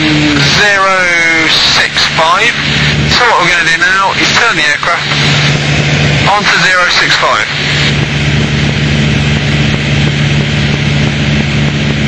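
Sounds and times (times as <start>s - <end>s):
airplane engine and propeller droning: 0.0s - 12.0s
rushing air: 0.0s - 12.0s.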